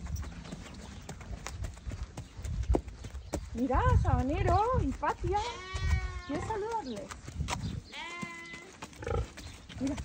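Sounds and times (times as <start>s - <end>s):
horse hooves on dirt: 0.0s - 10.0s.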